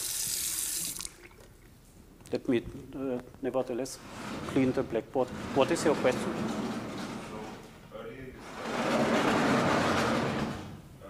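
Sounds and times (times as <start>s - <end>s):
sliding blackboard panels rumbling: 3.9s - 10.9s.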